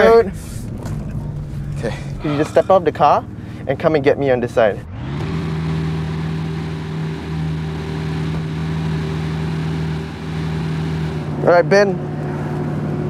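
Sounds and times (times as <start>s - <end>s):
car engine idling: 0.0s - 12.6s.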